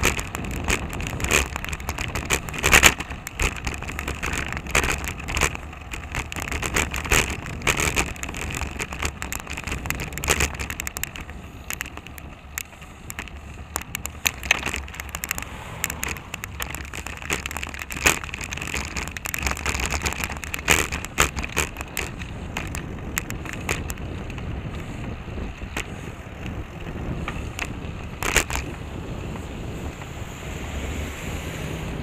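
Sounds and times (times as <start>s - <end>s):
sharp clicks and knocks: 0.0s - 29.5s
low road rumble: 0.0s - 32.0s
wind on microphone: 0.0s - 32.0s.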